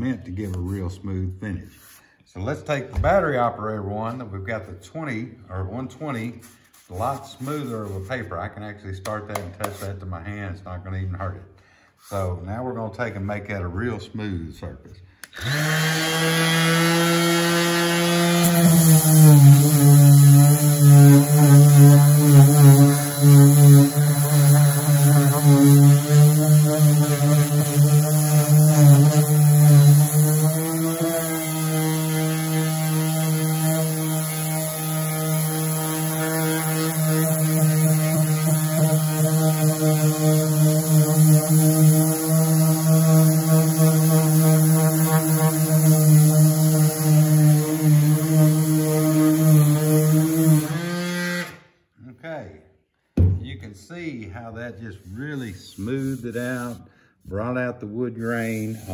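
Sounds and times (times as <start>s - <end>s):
orbital sander sanding wood: 6.0s - 8.1s, 15.4s - 51.6s, 55.0s - 56.8s, 58.2s - 58.9s.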